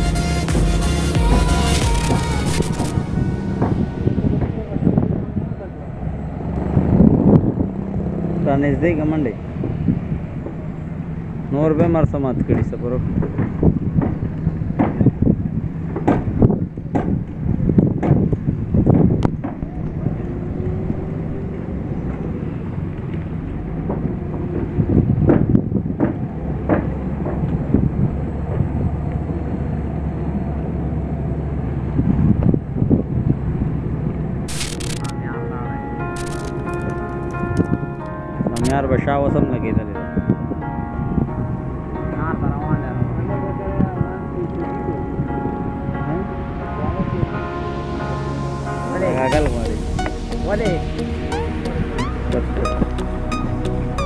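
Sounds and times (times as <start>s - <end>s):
boat engine droning: 0.0s - 54.0s
steady low rumble: 0.0s - 54.0s
wind buffeting microphone: 2.1s - 47.7s.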